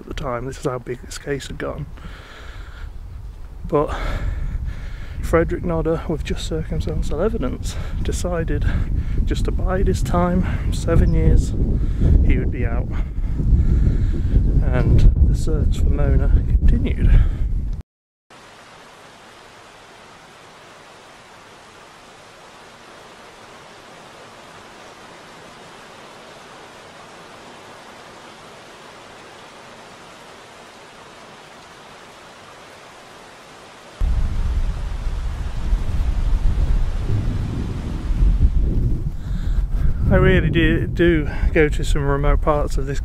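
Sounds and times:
rain falling: 18.3s - 39.9s
loud low rumble: 34.0s - 39.2s.

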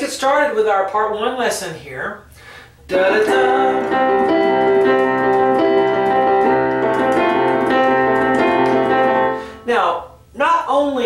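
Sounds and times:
man's voice: 2.9s - 4.2s
piano chords: 2.9s - 9.8s.

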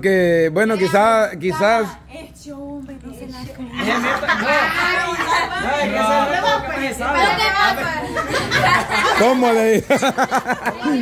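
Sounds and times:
overlapping voices talking loudly: 0.6s - 11.0s.

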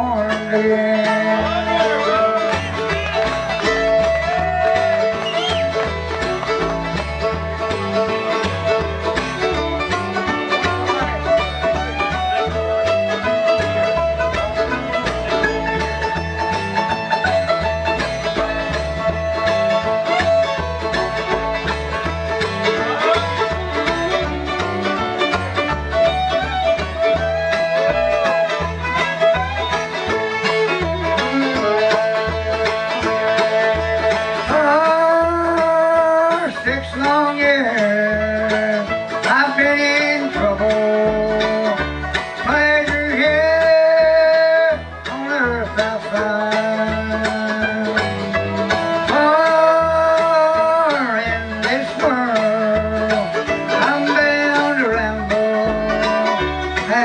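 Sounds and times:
banjo: 0.0s - 57.0s
fiddle: 0.0s - 57.0s
guitar: 0.0s - 57.0s
mandolin: 0.0s - 57.0s
upright bass notes: 0.0s - 57.0s.

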